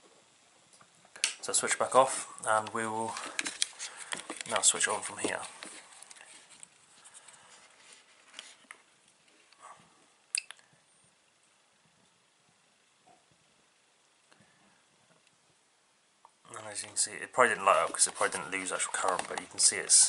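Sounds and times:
handling rustles: 2.5 - 9.5, 16.6 - 20.0.

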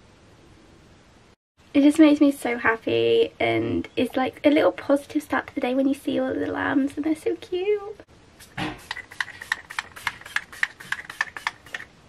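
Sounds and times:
spray pump spritzes: 8.4 - 11.9.

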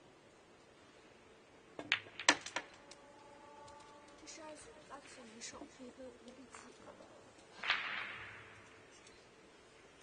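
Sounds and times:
pool balls clacking: 1.8 - 2.7.

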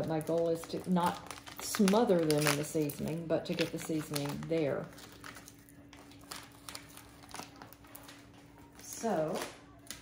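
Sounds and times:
plastic bag crinkling: 0.0 - 10.0.

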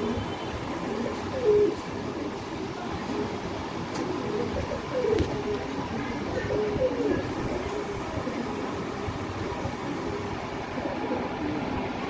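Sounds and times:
pigeons cooing: 0.0 - 12.0.

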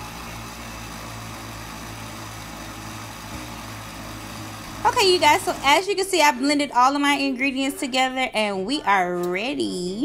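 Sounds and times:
blender motor running: 0.0 - 6.4.

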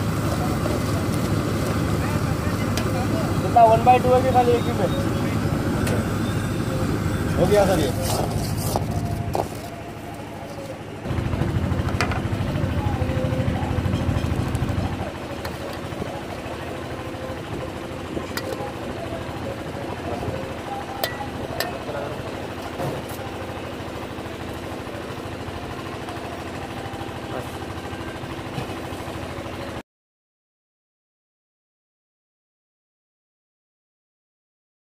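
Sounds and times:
gas burner roaring: 0.0 - 29.8.

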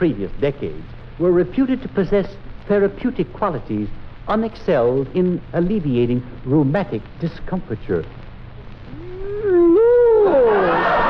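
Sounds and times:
man's comic wordless vocal sound: 8.9 - 10.6.

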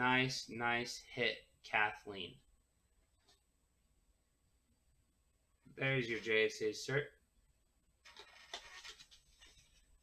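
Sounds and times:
faint rustling and scraping: 8.0 - 10.0.

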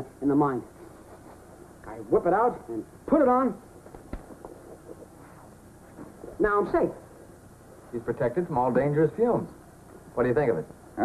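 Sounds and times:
television soundtrack hiss: 0.0 - 11.0.

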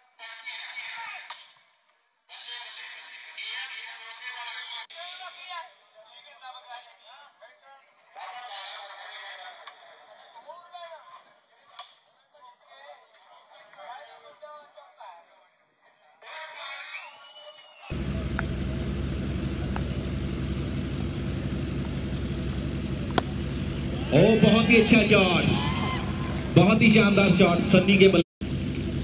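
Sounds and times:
loud steady low hum: 17.9 - 29.0
players shouting: 20.9 - 28.2
bat striking ball: 23.0 - 24.6.

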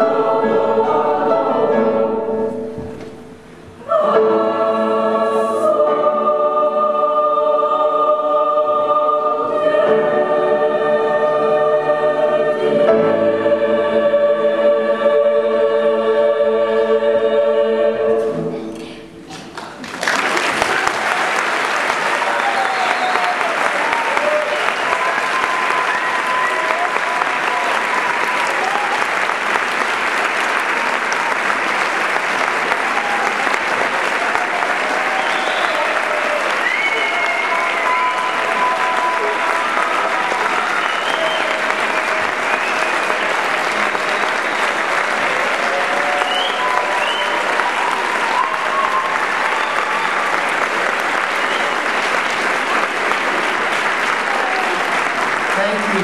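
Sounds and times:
audience applause: 19.3 - 56.0.

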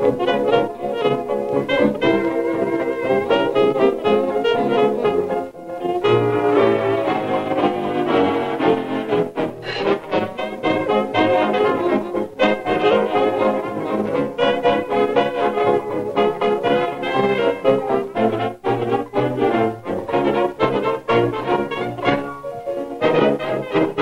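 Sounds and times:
brass background music: 0.0 - 24.0.

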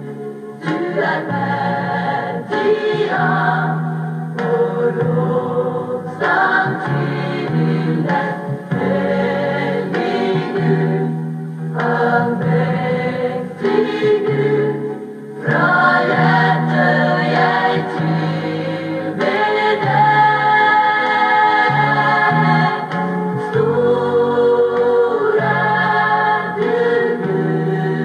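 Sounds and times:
vocal group singing in harmony: 0.0 - 28.0.

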